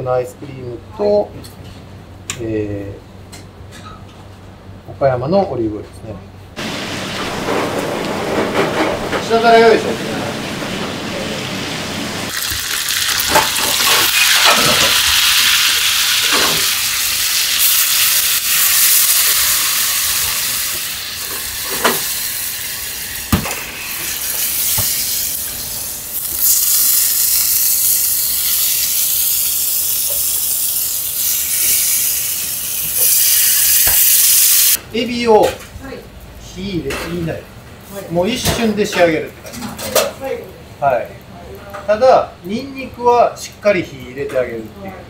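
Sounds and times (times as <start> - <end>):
food sizzling in hot oil: 11.4 - 34.8.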